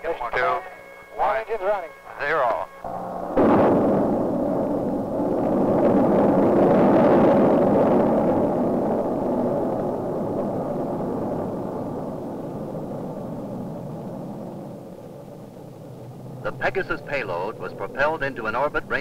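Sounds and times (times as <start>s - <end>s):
rocket engines roaring at liftoff: 0.0s - 19.0s.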